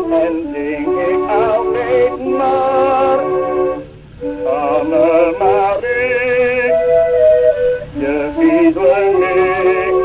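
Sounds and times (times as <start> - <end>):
accordion melody: 0.0 - 10.0
old record of a song: 0.0 - 10.0.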